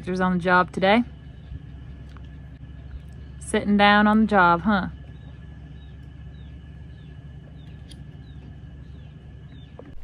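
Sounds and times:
steady low hum: 0:00.0 - 0:10.0
small bird chirping: 0:04.9 - 0:10.0.

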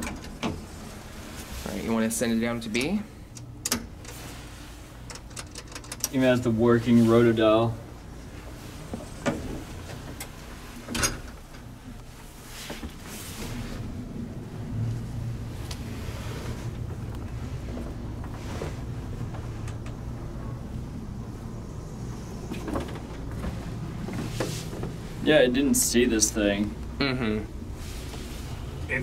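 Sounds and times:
elevator running with low hum: 0:00.0 - 0:29.0.

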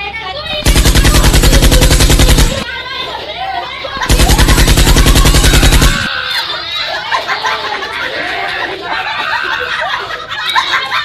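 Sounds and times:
voices: 0:00.0 - 0:11.0
machine-gun fire: 0:00.6 - 0:02.7, 0:04.0 - 0:06.1.

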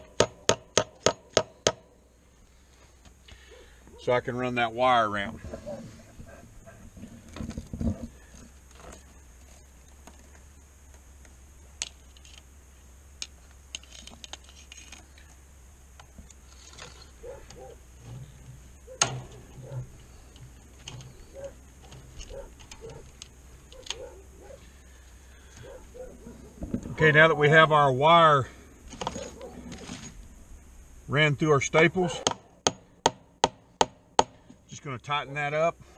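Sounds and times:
wire scraping and rattling: 0:05.3 - 0:10.4, 0:11.8 - 0:12.5, 0:13.2 - 0:15.4, 0:16.0 - 0:27.6, 0:28.9 - 0:30.3.

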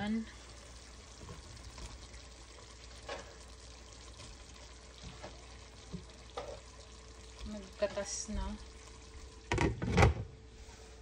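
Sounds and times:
meat sizzling in a pot: 0:00.0 - 0:11.0.

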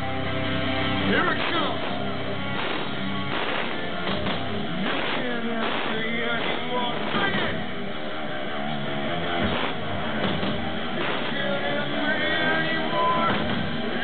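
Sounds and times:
drums: 0:00.0 - 0:14.0
electric guitars: 0:00.0 - 0:14.0
man singing: 0:05.0 - 0:07.6, 0:11.0 - 0:14.0.

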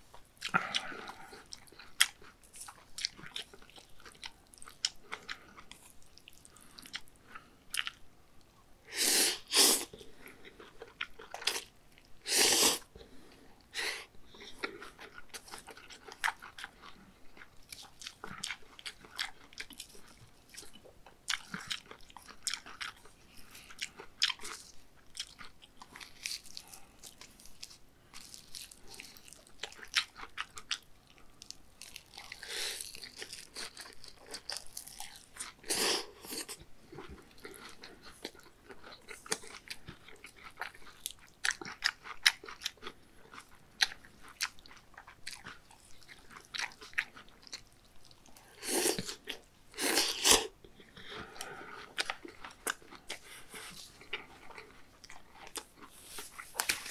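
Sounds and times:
wet chewing mouth sounds: 0:00.4 - 0:08.0, 0:14.6 - 0:56.9.

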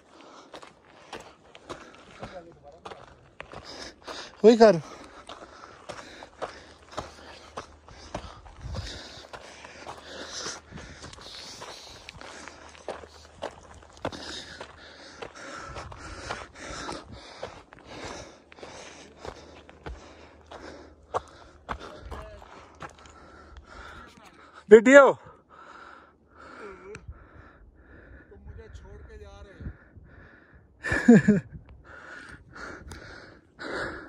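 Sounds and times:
footsteps on gravel trail: 0:00.0 - 0:24.6
person breathing: 0:03.4 - 0:24.7, 0:25.4 - 0:28.6, 0:31.8 - 0:34.0.

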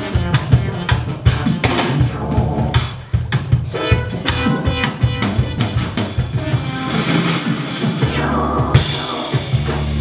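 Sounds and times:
band music with drum kit: 0:00.0 - 0:10.0.

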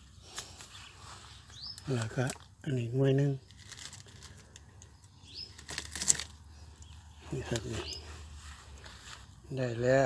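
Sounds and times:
fruit stem rustling: 0:03.3 - 0:09.6
stem snapping: 0:03.5 - 0:06.4.

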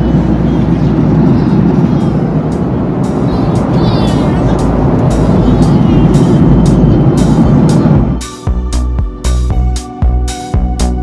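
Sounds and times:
airliner cabin rumble: 0:00.0 - 0:08.9
background music with steady beat: 0:02.0 - 0:11.0.

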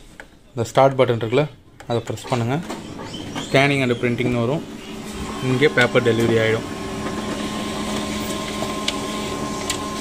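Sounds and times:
photocopier whirring: 0:01.8 - 0:10.0
paper feed click: 0:04.2 - 0:10.0.

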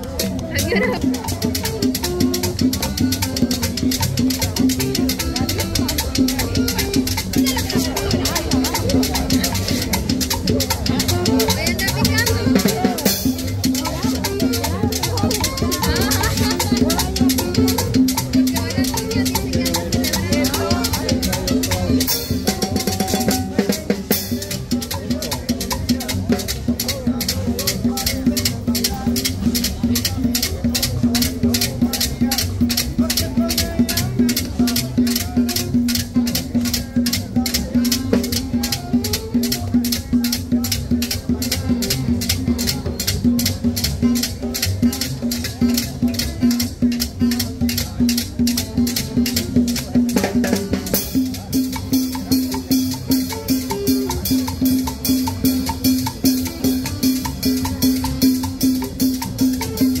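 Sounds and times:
latin dance music: 0:00.0 - 1:00.0.

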